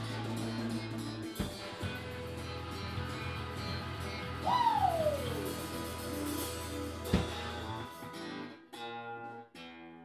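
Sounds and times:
band playing quietly: 0:00.0 - 0:09.4.

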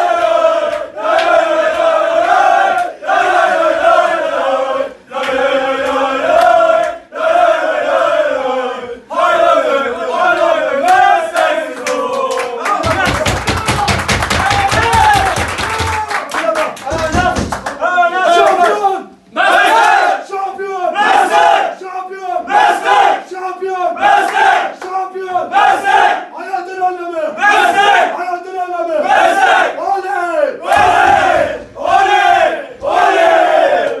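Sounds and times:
men chanting and shouting: 0:00.0 - 0:34.0
hand clapping: 0:00.7 - 0:03.0, 0:05.2 - 0:07.0, 0:10.4 - 0:17.8, 0:24.2 - 0:25.0.

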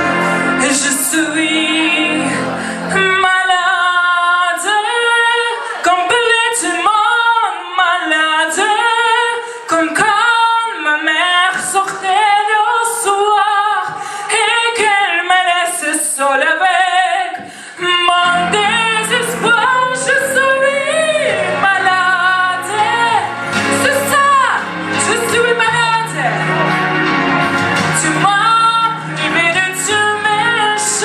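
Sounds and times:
backing track bass: 0:00.0 - 0:03.2, 0:17.8 - 0:31.0
woman singing with vibrato: 0:00.0 - 0:31.0.

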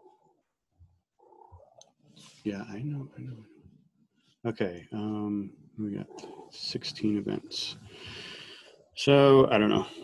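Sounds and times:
cat vocalizing faintly: 0:05.9 - 0:07.9.

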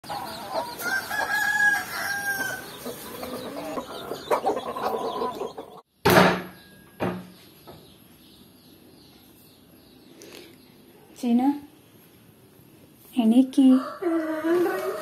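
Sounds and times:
chickens clucking: 0:00.0 - 0:05.9
rooster crowing: 0:00.1 - 0:05.5, 0:13.7 - 0:15.0
loud thump: 0:06.0 - 0:07.3.

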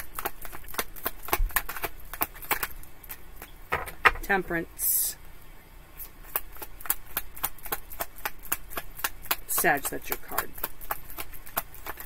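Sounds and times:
cards being shuffled: 0:00.0 - 0:04.4, 0:06.2 - 0:12.0.

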